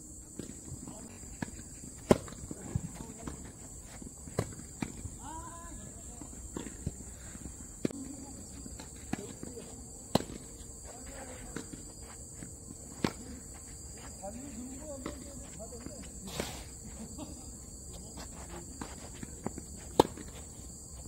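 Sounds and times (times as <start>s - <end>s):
tennis balls hit and bouncing: 0.2s - 5.2s, 5.8s - 16.2s, 18.1s - 21.0s.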